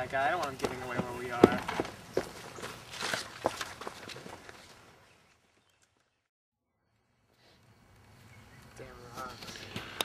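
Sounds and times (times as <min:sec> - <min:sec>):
footsteps on dirt: 0:00.0 - 0:06.2.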